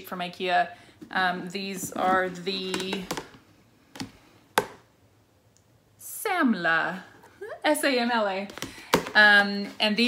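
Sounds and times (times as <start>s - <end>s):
plastic bin clicks: 2.6s - 4.8s.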